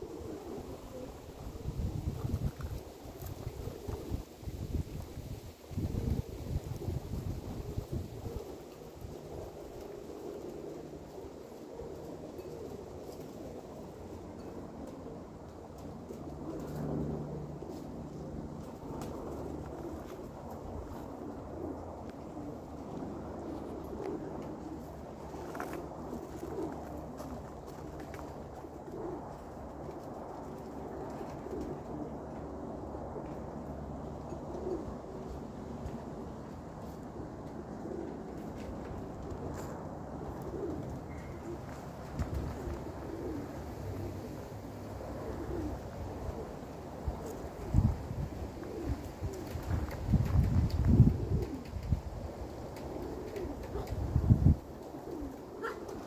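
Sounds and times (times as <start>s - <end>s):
pigeons cooing: 0.0s - 56.0s.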